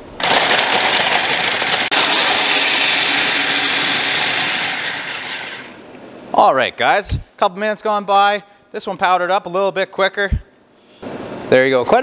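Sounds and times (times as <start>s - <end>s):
food processor chopping: 0.1s - 5.8s.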